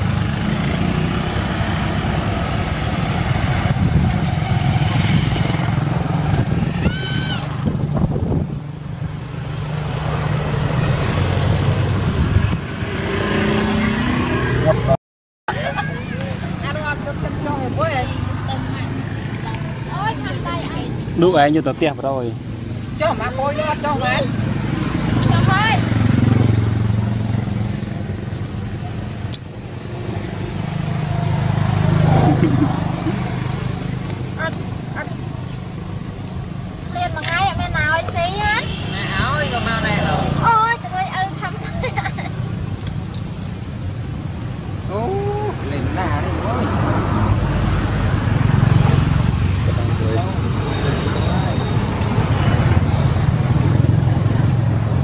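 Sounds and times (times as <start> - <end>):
road traffic rumble: 0.0 - 55.0
people talking: 14.6 - 22.4, 25.2 - 25.8, 34.4 - 35.2, 36.9 - 42.3, 44.9 - 47.1, 49.5 - 51.8.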